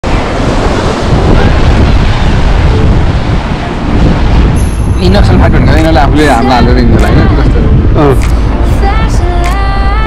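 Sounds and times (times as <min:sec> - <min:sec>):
sea surf: 0:00.0 - 0:10.0
wind buffeting microphone: 0:00.0 - 0:10.0.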